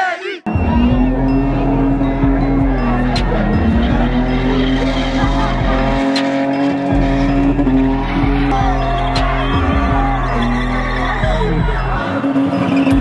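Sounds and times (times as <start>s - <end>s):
music with heavy bass line: 0.4s - 13.0s
car engine at high revs: 0.5s - 13.0s
tyres squealing: 0.5s - 13.0s.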